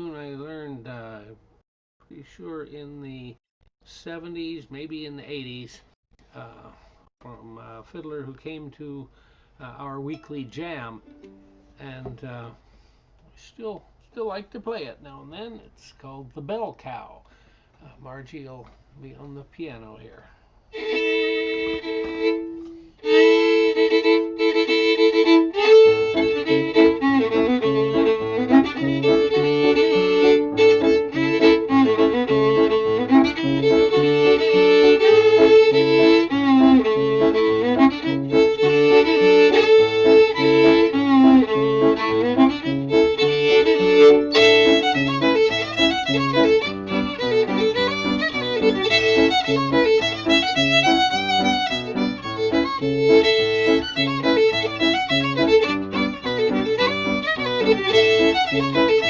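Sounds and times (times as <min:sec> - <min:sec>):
fiddle playing folk dance tune: 0:10.7 - 0:12.5, 0:20.8 - 0:59.0
piano accompaniment: 0:20.8 - 0:59.0.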